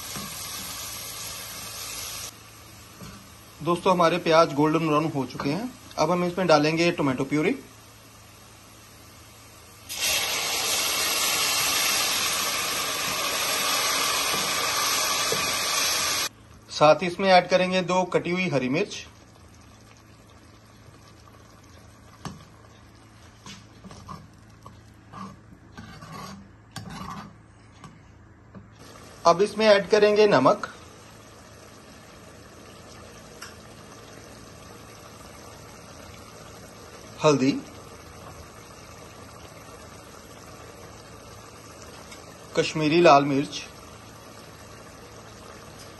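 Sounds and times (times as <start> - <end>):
sauce bubbling in a pan: 0.0 - 27.2, 28.8 - 45.9
loud steady sizzle in oil: 0.0 - 27.4, 28.8 - 45.9.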